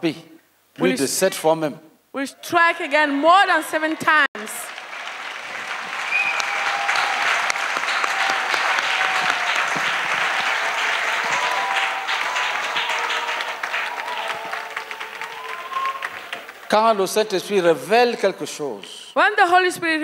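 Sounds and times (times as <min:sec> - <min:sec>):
crowd applauding: 0:02.6 - 0:17.8.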